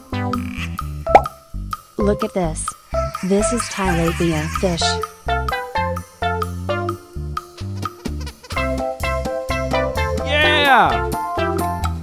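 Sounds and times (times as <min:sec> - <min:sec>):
plucked bass-heavy music: 0:00.0 - 0:12.0.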